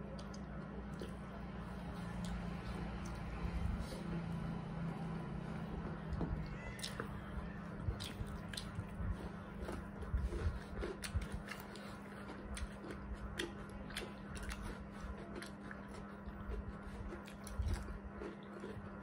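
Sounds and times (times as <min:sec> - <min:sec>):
low hum: 0:00.0 - 0:19.0
people chewing and lip smacking: 0:00.0 - 0:19.0.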